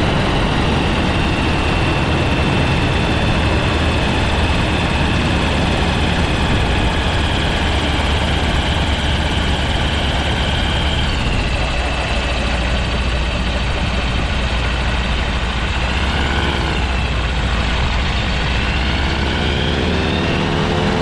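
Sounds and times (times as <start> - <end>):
aircraft engine and propeller: 0.0 - 21.0.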